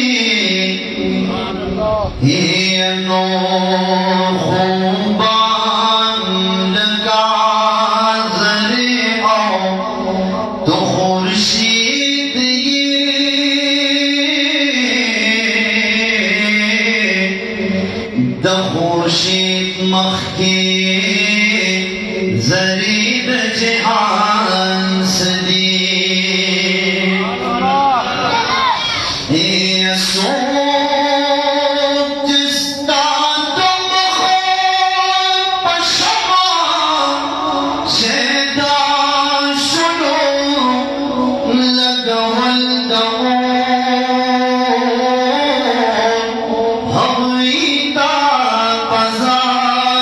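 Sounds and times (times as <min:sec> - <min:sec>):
man chanting: 0:00.0 - 0:28.4, 0:29.1 - 0:50.0.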